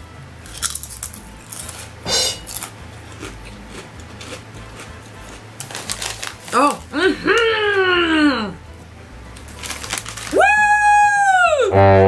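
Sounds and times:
potato chip crunching: 0.4 - 7.0, 9.3 - 11.0.

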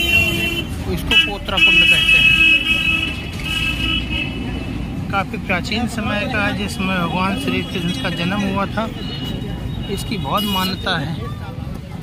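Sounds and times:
vehicle horn: 0.0 - 4.5, 9.0 - 11.0
street traffic rumble: 0.0 - 12.0.

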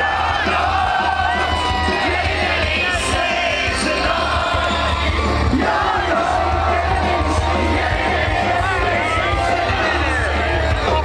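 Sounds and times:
crowd shouting and singing along: 0.0 - 11.0
electronic rock band playing: 0.0 - 11.0
heavy bass: 0.0 - 11.0.

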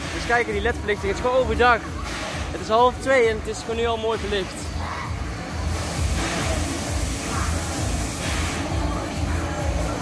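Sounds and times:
fairground music over loudspeakers: 0.0 - 10.0
hiss: 5.7 - 8.9.

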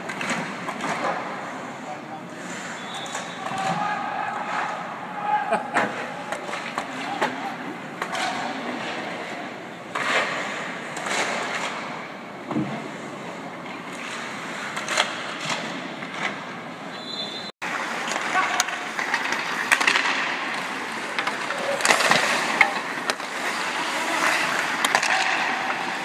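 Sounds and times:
sticks striking pucks: 0.0 - 1.8, 2.4 - 12.9, 13.7 - 16.6, 17.7 - 26.0
skates scraping on ice: 0.0 - 4.8, 5.9 - 16.6, 17.7 - 26.0.

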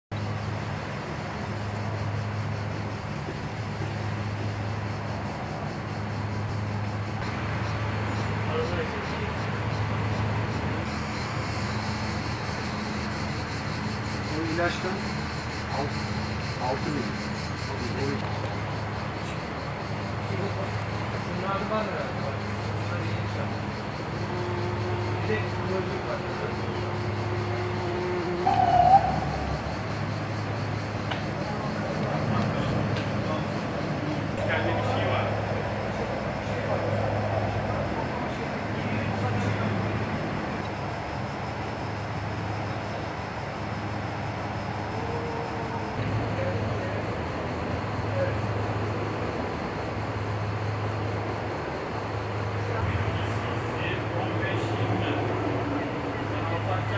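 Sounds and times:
steady low hum: 0.1 - 56.9
bumblebee buzzing: 23.8 - 30.1.

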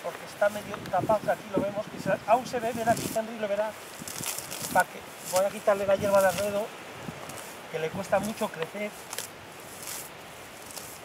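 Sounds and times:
grass rustling and tearing: 0.0 - 11.0.

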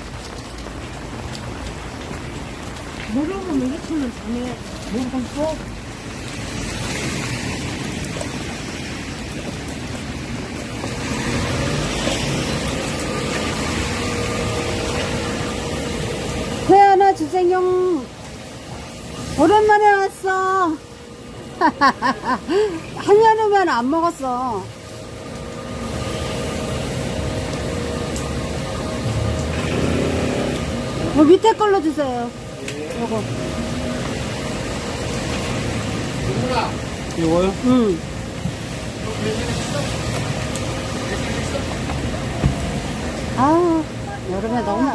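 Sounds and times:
busy market rumble: 10.1 - 18.0, 25.7 - 44.9
market background noise: 39.1 - 44.9.

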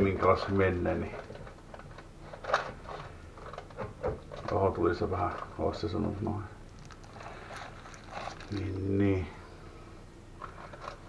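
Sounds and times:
baking paper rustling: 6.8 - 9.4.

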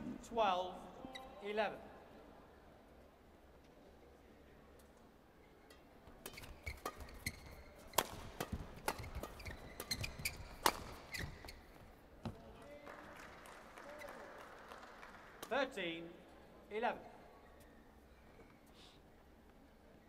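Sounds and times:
rackets hitting shuttlecock: 6.2 - 11.6.

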